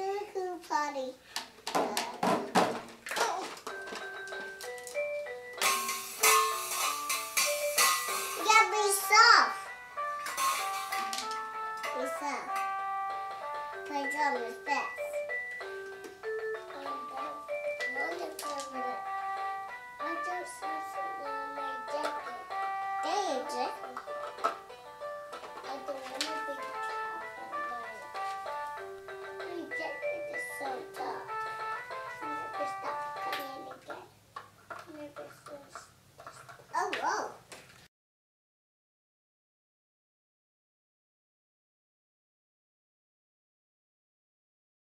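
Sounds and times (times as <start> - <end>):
tap on toy drum: 1.4 - 2.9, 22.0 - 22.3, 23.9 - 24.6
toy guitar beeping melody: 3.6 - 33.8.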